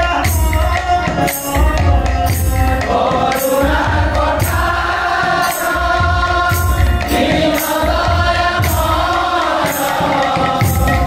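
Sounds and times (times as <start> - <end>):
barrel drum: 0.0 - 11.0
group of men singing: 0.0 - 11.0.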